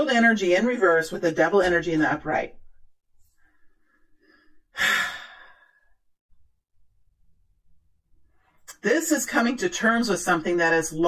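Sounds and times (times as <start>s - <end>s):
person sighing: 4.4s - 5.9s.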